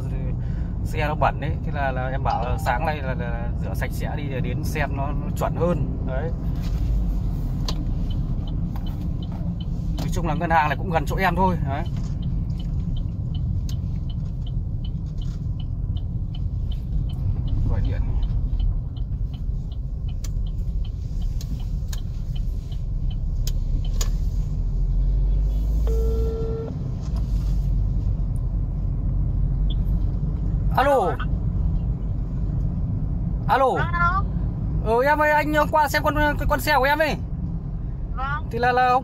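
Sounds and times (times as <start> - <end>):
car road and engine noise: 0.0 - 39.0
short beep: 25.9 - 26.8.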